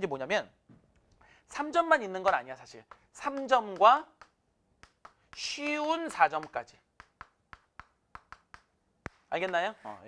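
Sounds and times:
chalk tapping on chalkboard: 2.2s - 9.9s.

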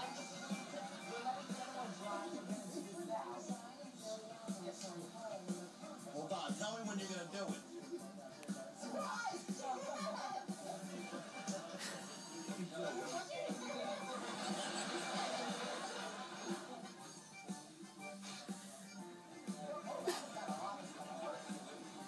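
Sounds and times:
background music from tv speaker: 0.0s - 22.0s
voices from tv speaker: 0.0s - 22.0s.

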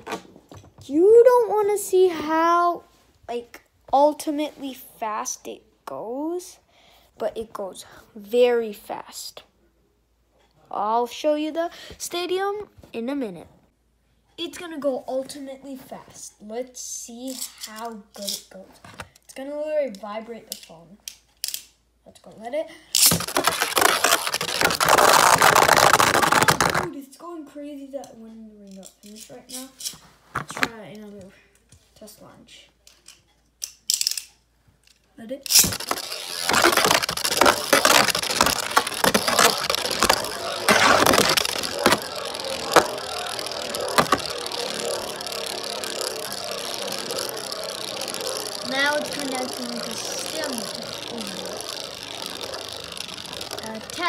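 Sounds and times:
spinning top rattling on plastic: 22.9s - 26.9s, 34.9s - 54.0s
spinning top ripped from launcher: 23.0s - 26.9s, 35.4s - 54.0s.

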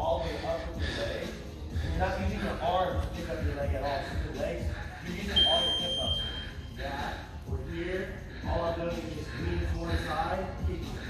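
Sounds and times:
timer electronic beep: 5.4s - 6.4s.

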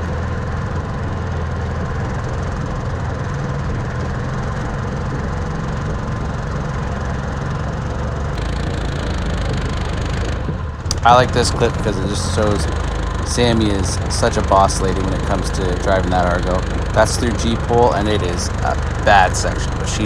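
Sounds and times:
engine droning: 0.0s - 20.0s
machine rattling over rough ground: 0.0s - 20.0s.

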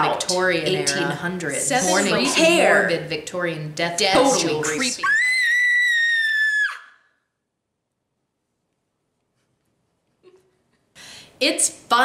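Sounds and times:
woman screaming: 4.2s - 7.1s.

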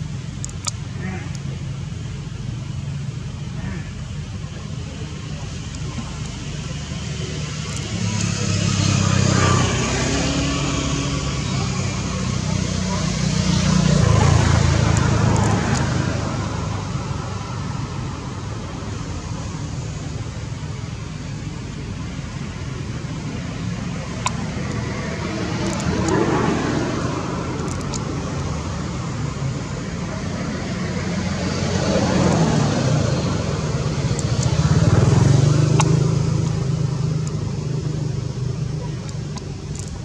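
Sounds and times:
vehicle engine humming: 0.0s - 40.0s.

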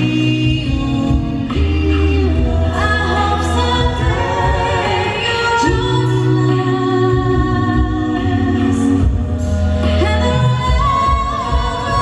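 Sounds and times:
a cappella group singing chords: 0.0s - 12.0s.

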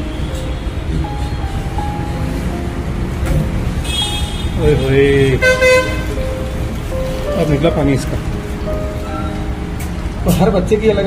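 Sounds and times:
traffic rumble: 0.0s - 11.0s
vehicle horn toot: 3.8s - 6.2s.

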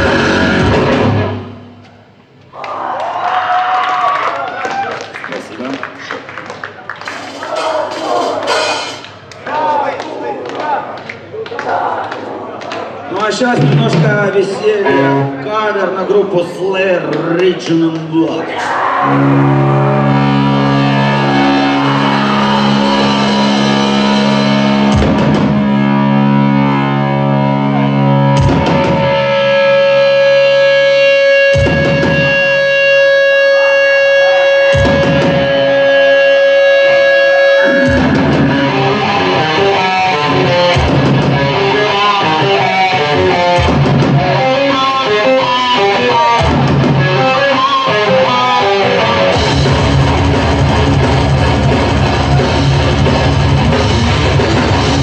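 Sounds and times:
distorted electric guitars: 0.0s - 2.5s, 13.4s - 15.6s, 18.6s - 55.0s
drum and cymbal hits: 7.1s - 9.3s, 22.4s - 26.2s, 28.4s - 29.7s, 31.5s - 32.7s, 34.7s - 35.8s, 37.7s - 42.5s.

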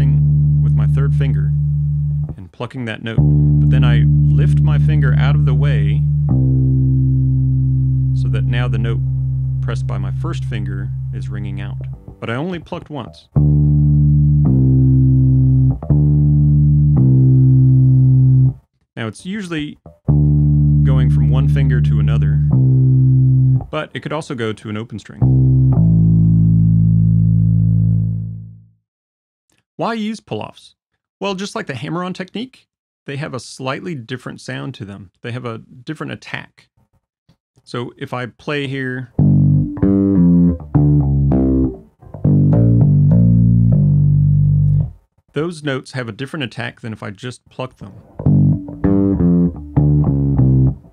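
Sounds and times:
electric bass guitar pull-offs: 0.0s - 2.5s, 3.2s - 12.6s, 13.3s - 18.6s, 19.8s - 23.8s, 25.2s - 28.5s, 39.2s - 45.0s, 47.9s - 50.9s.

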